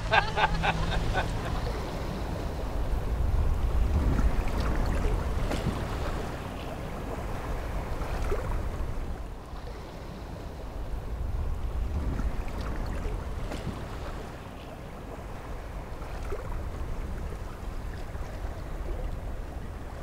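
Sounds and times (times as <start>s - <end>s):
sea rushing: 0.0s - 20.0s
wind rumbling on microphone: 0.0s - 20.0s.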